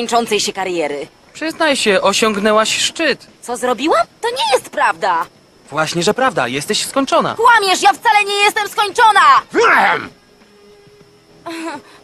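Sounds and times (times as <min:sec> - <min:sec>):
faint background music: 0:00.0 - 0:12.0
cartoon voice shouting: 0:08.9 - 0:10.1.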